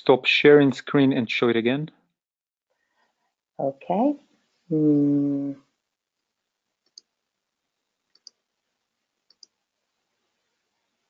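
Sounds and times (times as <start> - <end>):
computer mouse clicks: 6.8 - 7.1, 8.1 - 8.4, 9.3 - 9.6.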